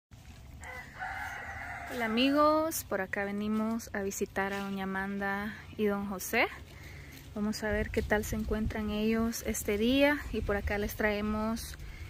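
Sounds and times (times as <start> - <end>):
rooster crowing: 0.6 - 2.6.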